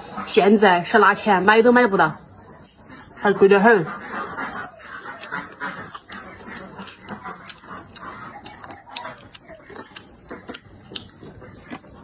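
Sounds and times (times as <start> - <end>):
chewing crunchy root: 3.9 - 12.0.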